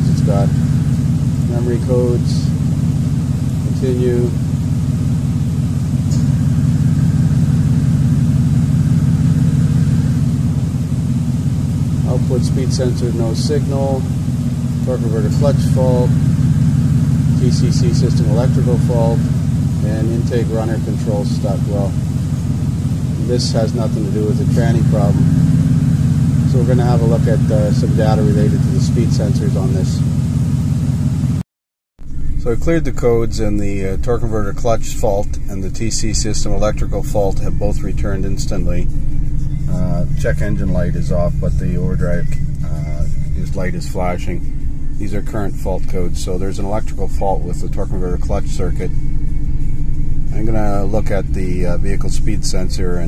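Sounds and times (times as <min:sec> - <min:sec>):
engine idling with low rumble: 0:00.0 - 0:31.4, 0:32.0 - 0:53.0.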